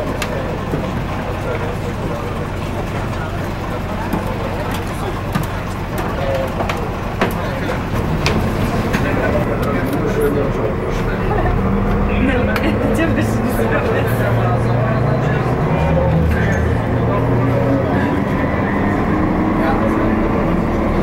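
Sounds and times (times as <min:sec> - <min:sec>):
bus diesel engine: 0:00.0 - 0:21.0
muffled voices: 0:00.0 - 0:21.0.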